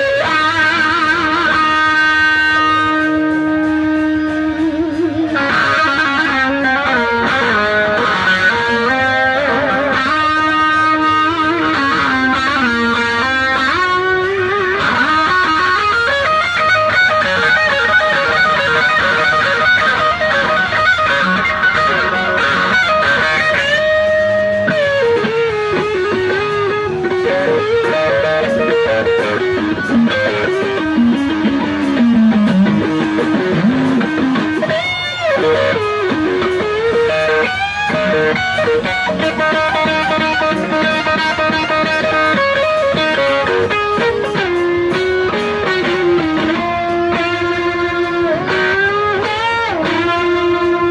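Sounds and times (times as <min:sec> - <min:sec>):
electric guitar lead lines: 0:00.0 - 0:50.9.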